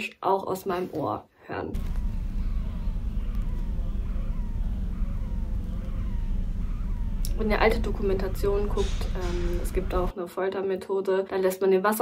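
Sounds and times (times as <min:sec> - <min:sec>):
low rumble inside ear: 0:01.7 - 0:10.1
pulsing falling whoosh: 0:01.8 - 0:10.1.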